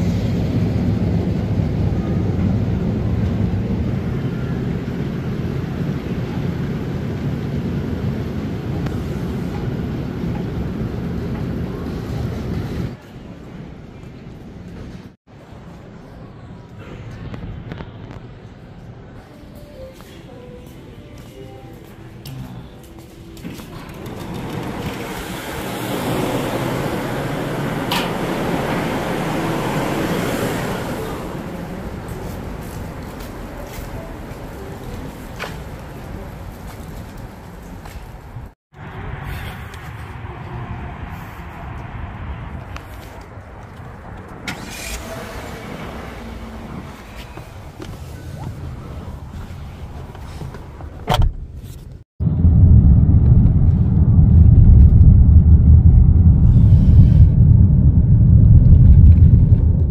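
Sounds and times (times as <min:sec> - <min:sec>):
steady low rumble: 0:00.0 - 0:19.2, 0:52.2 - 0:59.9
car door latch clicking: 0:51.0 - 0:51.4
low rumble: 0:52.2 - 0:59.9.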